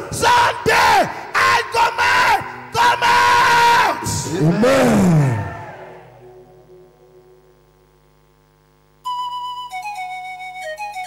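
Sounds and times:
man shouting through a microphone: 0.0s - 6.0s
faint held musical tones: 6.0s - 11.0s.

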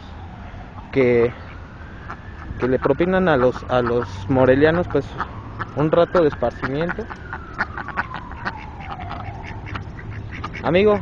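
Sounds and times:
ducks quacking: 2.0s - 11.0s.

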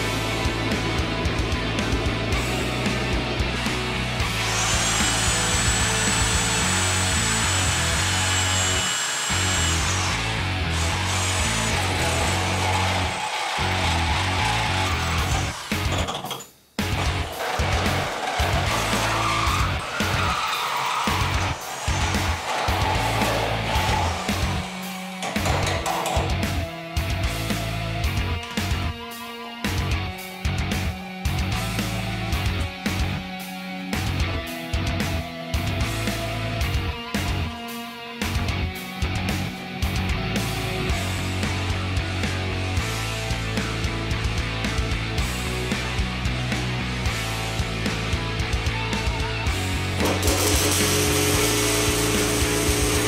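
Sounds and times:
rock music with electric guitar: 0.0s - 53.0s
power tool whining: 3.6s - 27.7s, 49.5s - 53.0s.

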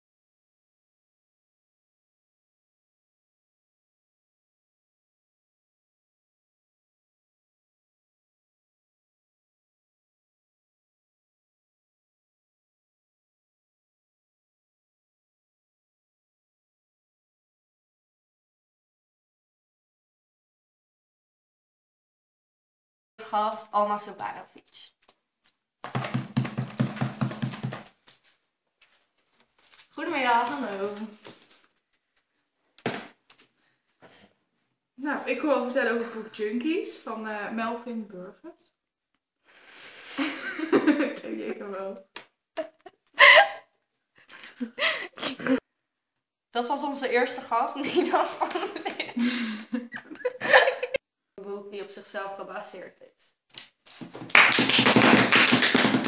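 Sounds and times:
fast even thumps: 25.8s - 27.9s
hands clapping: 25.8s - 27.9s, 53.5s - 56.0s.

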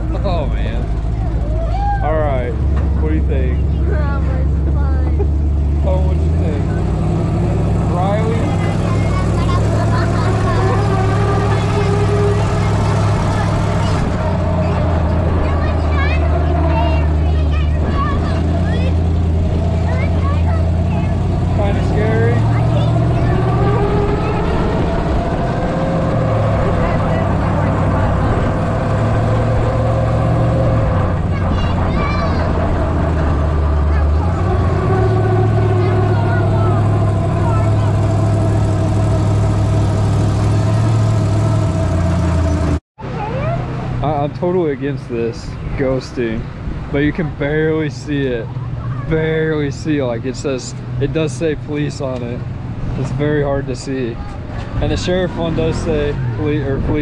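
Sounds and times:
faint voices: 0.0s - 41.0s, 43.0s - 57.0s
truck engine drone: 0.0s - 57.0s.

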